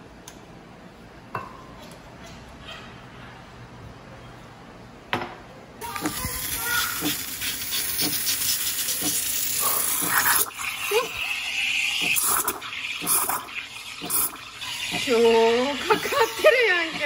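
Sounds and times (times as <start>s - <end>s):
steam wand hissing: 6.4s - 15.2s.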